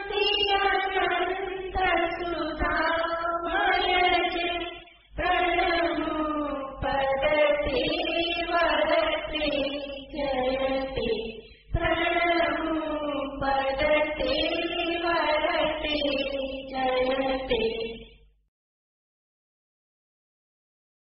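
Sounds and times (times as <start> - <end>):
voices chanting a hymn: 0.0 - 17.6.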